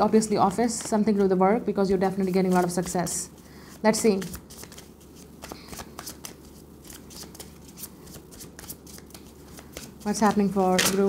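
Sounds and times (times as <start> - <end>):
cards being shuffled: 2.2 - 3.1, 4.0 - 11.0.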